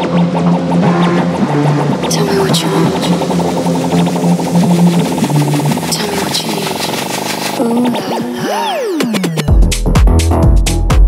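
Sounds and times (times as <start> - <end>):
deep synth bass line: 0.0 - 11.0
fast repeating rhythm: 0.0 - 11.0.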